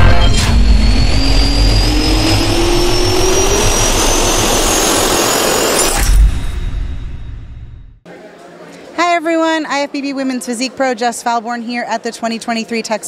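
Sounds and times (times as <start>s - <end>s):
jet engine spooling up: 0.0s - 8.0s.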